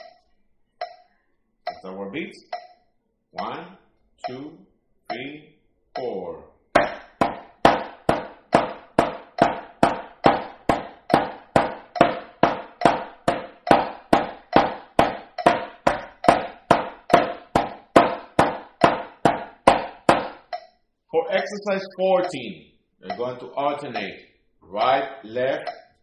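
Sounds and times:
drumsticks striking a drum: 6.8 - 20.7.

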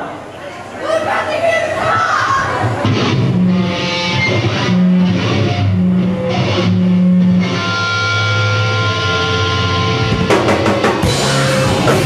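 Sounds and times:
distorted electric guitar chord: 2.8 - 12.0
drums crashing: 10.0 - 12.0.

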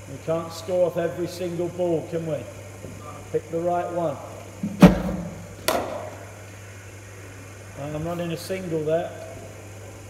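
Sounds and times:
low mains hum: 0.0 - 10.0
cricket bat striking ball: 4.6 - 6.2.

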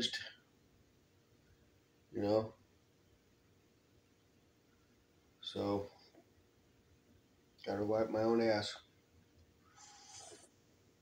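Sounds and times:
slurping sip of coffee: 9.7 - 10.6.

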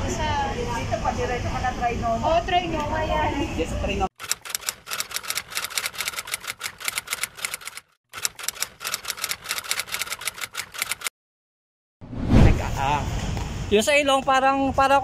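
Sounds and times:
typewriter key clicks: 4.2 - 11.1.

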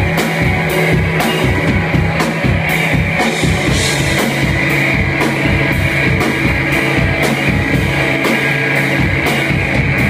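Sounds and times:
drum kit beat: 0.0 - 10.0
electric bass guitar: 0.0 - 10.0
rock band playing: 0.0 - 10.0.

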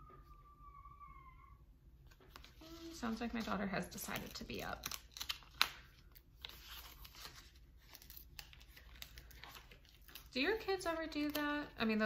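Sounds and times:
distant child calling: 0.0 - 1.7.

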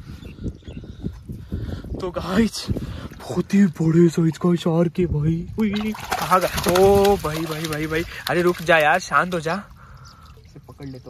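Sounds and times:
water splashing and sloshing: 5.6 - 10.7
fish thrashing at the surface: 5.7 - 9.1.

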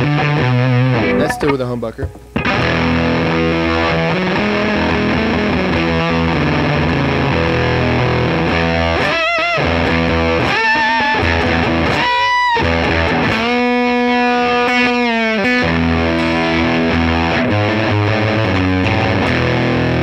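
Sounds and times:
fuzzy electric guitar lead: 0.0 - 20.0.

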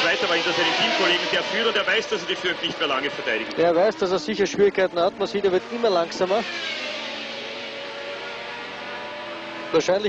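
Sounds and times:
high engine whine gliding down: 0.0 - 10.0
racing car engines droning: 0.0 - 10.0.

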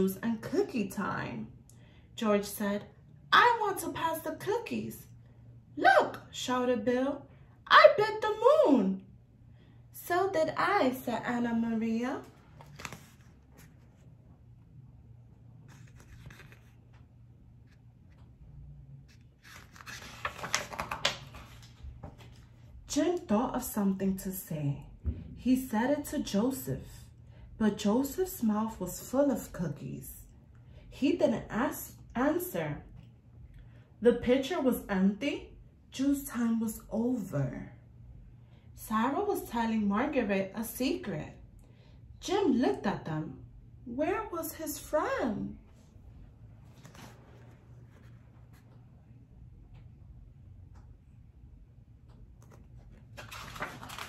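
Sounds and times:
low room hum: 0.0 - 54.0
paper page being turned: 12.2 - 14.1, 15.6 - 18.3, 19.0 - 22.5, 46.7 - 48.8, 52.4 - 54.0.

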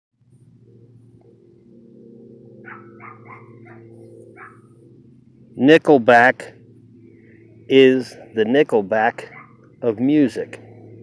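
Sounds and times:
steady low hum: 0.2 - 11.0.

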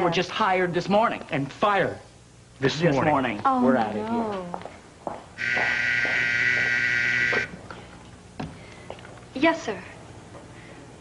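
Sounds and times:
intercom buzzer buzzing: 5.4 - 7.6.

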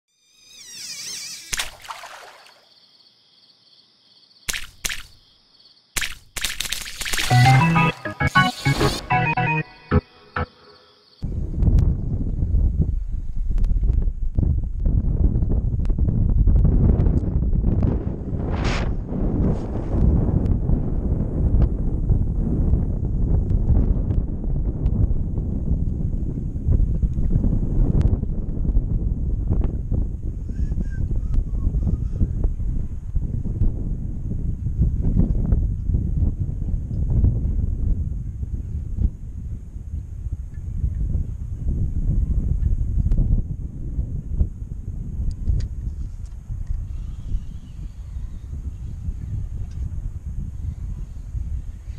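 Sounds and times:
wind buffeting microphone: 11.2 - 51.9.

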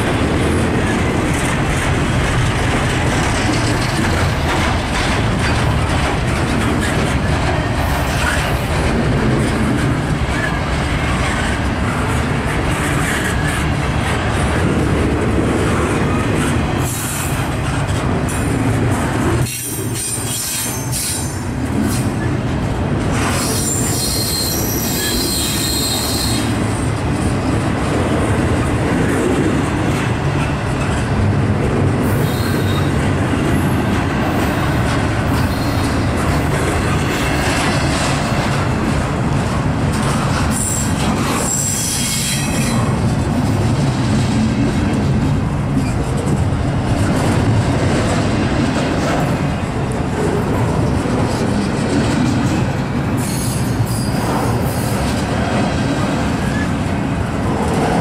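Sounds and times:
train wheels rumbling and rattling: 0.0 - 58.0
high-pitched wheel squeal: 23.4 - 26.5.

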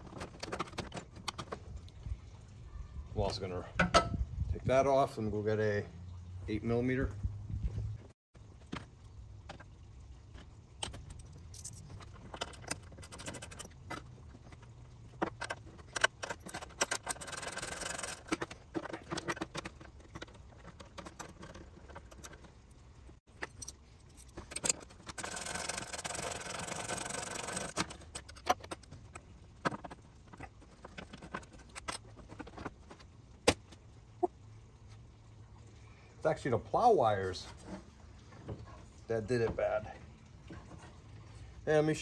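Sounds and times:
ratchet wrench clicking: 24.6 - 27.8.

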